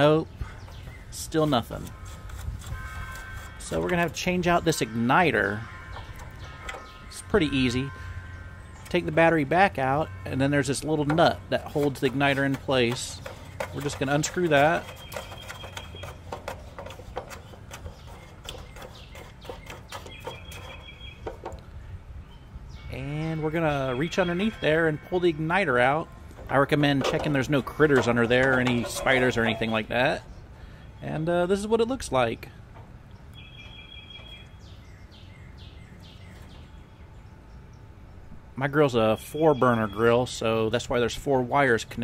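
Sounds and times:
distant bird calling: 0.0s - 40.5s
low outdoor rumble: 0.0s - 42.0s.

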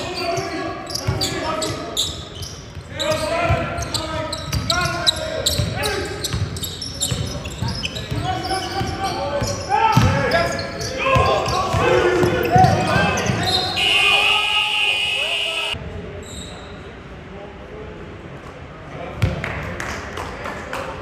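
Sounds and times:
sneakers squeaking: 0.0s - 14.3s, 15.0s - 16.8s.

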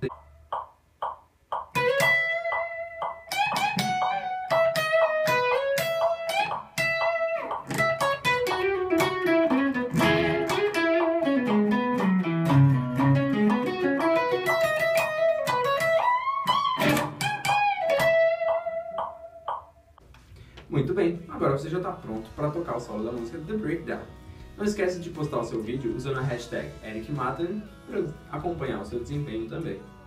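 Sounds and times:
electric guitar lead solo: 1.7s - 19.4s.

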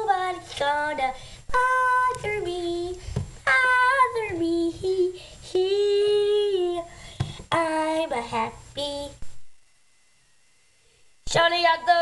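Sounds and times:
girl singing unaccompanied: 0.0s - 9.3s, 11.2s - 12.0s.

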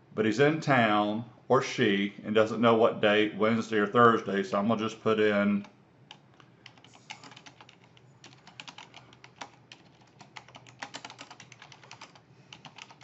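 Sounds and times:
typing on computer keyboard: 6.1s - 13.0s.

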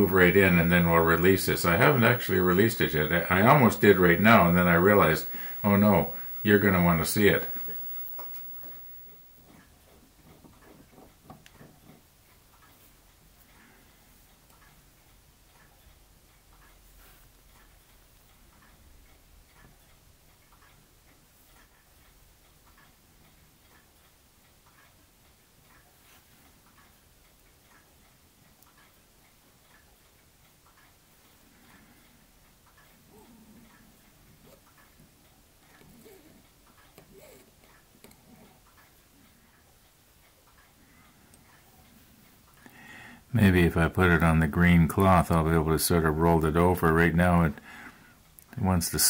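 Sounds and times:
quiet handling sounds: 0.0s - 9.6s
faint regular ticking: 0.0s - 49.0s.

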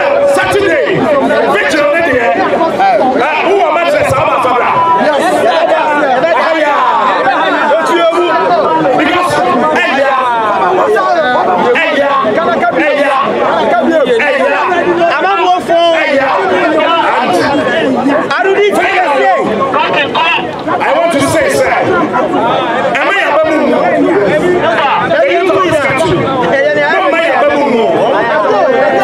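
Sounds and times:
man speaking loudly: 0.0s - 29.0s
voices in background: 0.0s - 29.0s.

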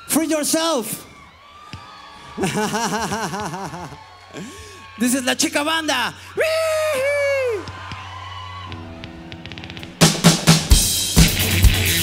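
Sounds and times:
man laughing into microphone: 2.3s - 4.6s.

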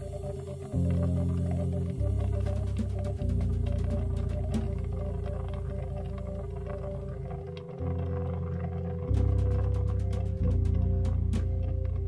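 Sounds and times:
electric bass notes: 0.0s - 12.0s.

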